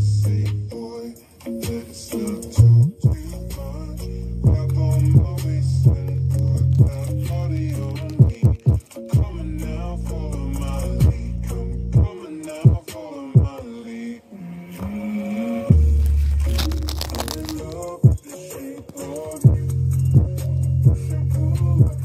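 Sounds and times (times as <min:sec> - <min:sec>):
song with vocals over speaker: 0:00.0 - 0:22.0.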